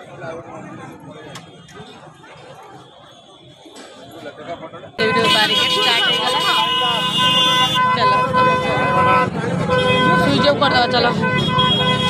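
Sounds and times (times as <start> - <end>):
people's voices: 0.0 - 11.4
vehicle horn long blast: 5.0 - 12.0.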